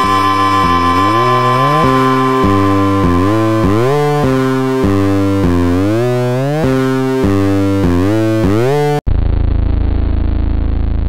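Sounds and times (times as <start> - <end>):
gliding lead instrument: 0.0 - 7.2
steady high drone: 0.0 - 7.2.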